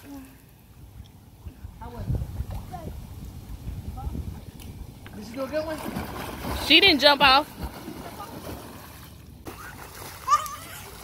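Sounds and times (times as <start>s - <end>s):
pool water splashing: 5.1s - 11.0s
child shouting: 9.6s - 11.0s.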